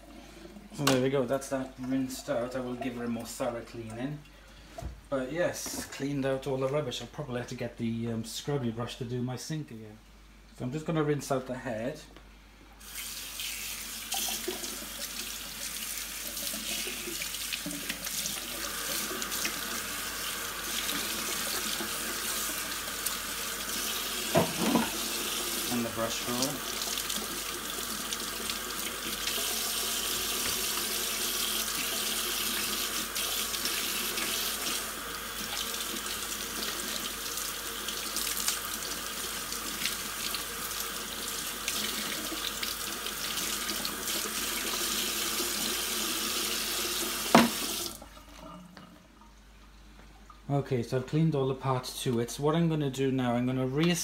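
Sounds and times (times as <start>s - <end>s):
tap water running into sink: 12.8s - 49.0s.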